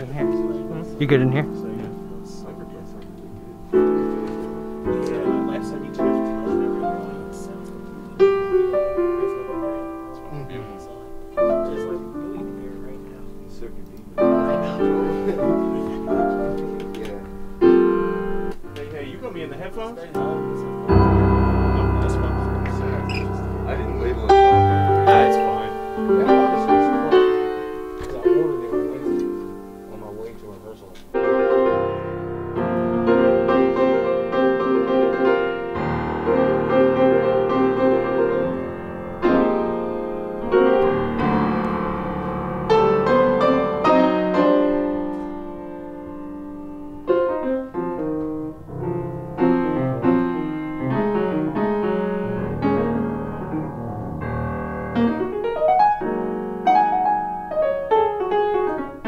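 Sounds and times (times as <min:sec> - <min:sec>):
piano chords and phrases: 0:00.0 - 0:59.0.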